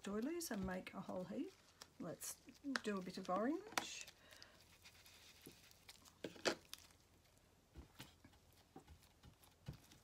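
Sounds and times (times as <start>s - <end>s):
paper crinkling: 0.0s - 10.0s
ink dauber tapping paper: 2.5s - 4.2s.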